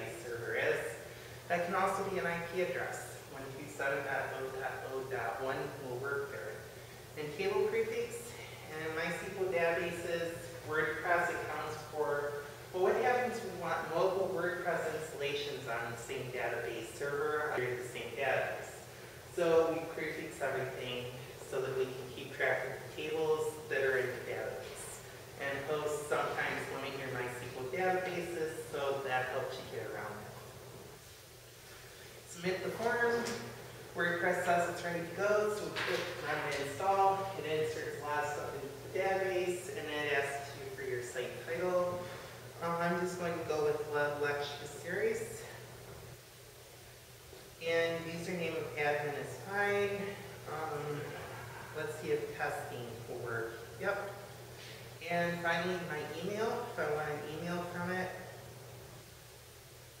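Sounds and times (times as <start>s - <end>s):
man talking: 0.0s - 30.4s, 32.3s - 45.6s, 47.6s - 54.2s
faint low hum: 0.0s - 60.0s.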